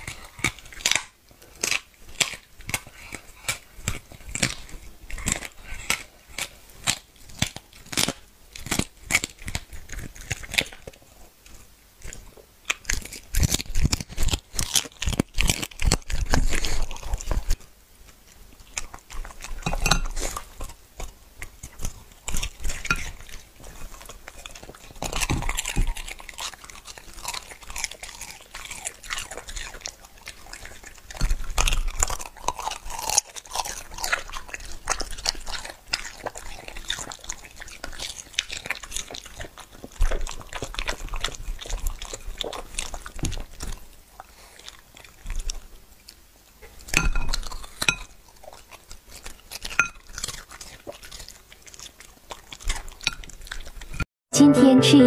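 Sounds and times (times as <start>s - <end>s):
dog chewing and crunching: 0.0s - 54.1s
dog licking and lapping: 12.8s - 54.0s.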